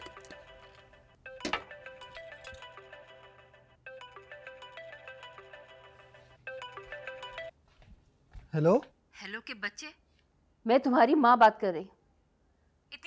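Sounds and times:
mobile phone ringtone: 0:00.0 - 0:07.6.

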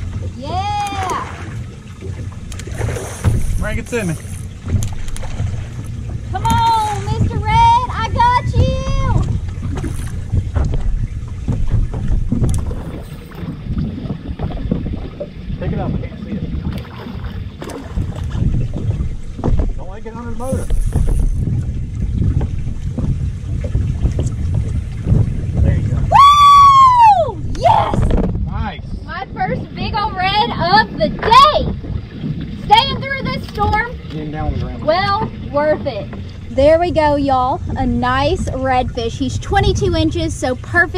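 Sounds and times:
wind rumbling on microphone: 0:00.0 - 0:40.9
loud rising and falling whoop: 0:26.1 - 0:28.0.

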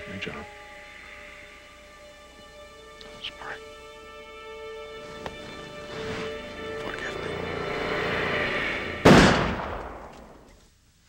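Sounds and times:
background music: 0:00.0 - 0:10.5
loud gunshot with echo: 0:09.0 - 0:10.4.

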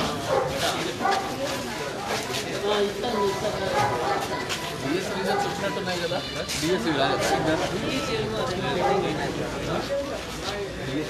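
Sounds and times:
men's voices in crowd: 0:00.0 - 0:11.0.

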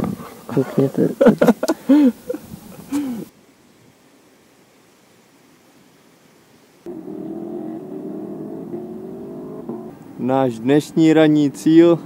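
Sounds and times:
vehicle engine droning: 0:06.9 - 0:10.2.

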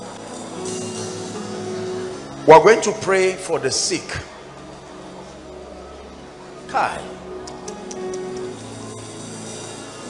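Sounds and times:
soft music of held chords: 0:00.0 - 0:10.0.

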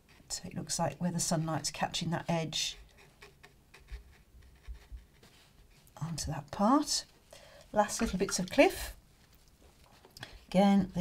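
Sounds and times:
paintbrush dabbing on paper: 0:01.2 - 0:06.0.

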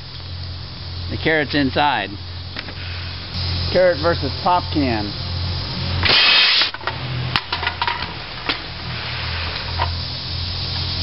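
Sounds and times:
loud blast of compressed air: 0:02.6 - 0:07.2, 0:08.6 - 0:11.0.

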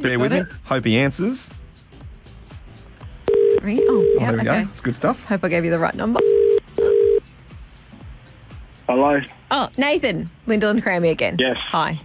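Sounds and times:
telephone ringback tone: 0:03.3 - 0:04.3, 0:06.2 - 0:07.2.

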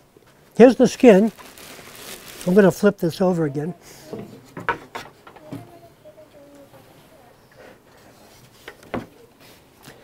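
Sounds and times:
wooden knocks: 0:04.2 - 0:05.7.

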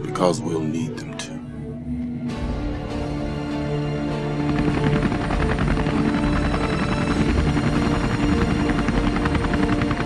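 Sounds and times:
dramatic music: 0:00.0 - 0:10.0
helicopter rotor chopping: 0:03.2 - 0:10.0.

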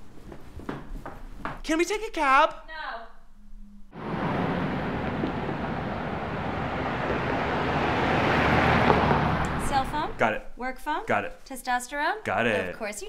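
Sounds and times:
city street traffic: 0:04.0 - 0:10.4.

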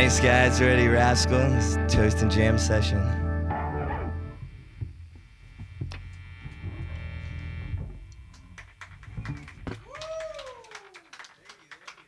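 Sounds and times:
distorted electric guitar chord: 0:00.0 - 0:08.6
low amp hum: 0:00.0 - 0:09.9.

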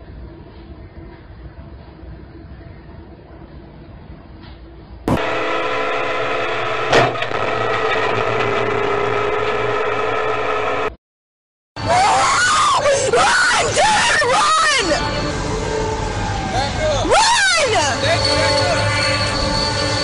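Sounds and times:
people shouting and screaming: 0:11.8 - 0:15.1, 0:15.9 - 0:18.8
train air horn chord: 0:14.9 - 0:16.3, 0:17.9 - 0:20.0.

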